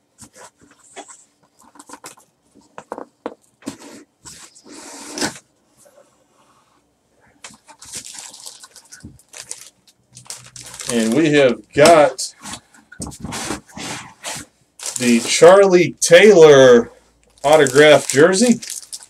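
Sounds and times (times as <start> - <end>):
plastic wrapping rustling: 7.4 - 19.0.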